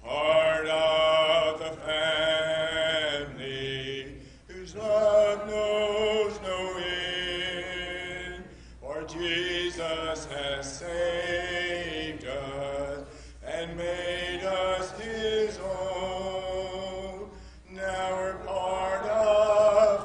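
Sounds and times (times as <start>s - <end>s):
congregation singing a hymn: 0.0s - 20.0s.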